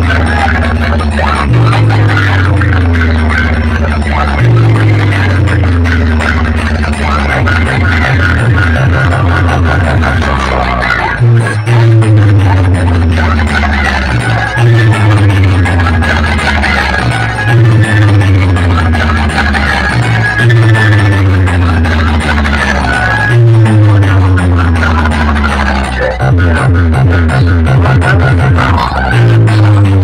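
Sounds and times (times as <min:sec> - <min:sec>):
loud electronic dance music: 0:00.0 - 0:30.0.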